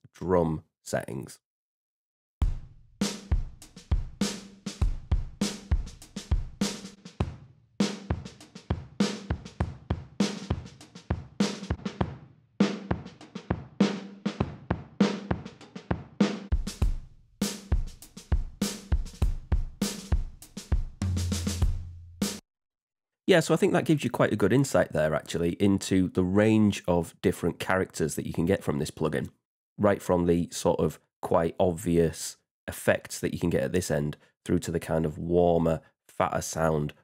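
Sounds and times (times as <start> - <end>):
drum kit groove: 2.4 - 22.4.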